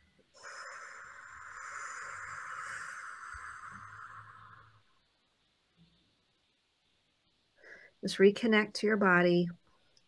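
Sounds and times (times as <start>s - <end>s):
slow exhale through mouth: 0.3s - 4.9s.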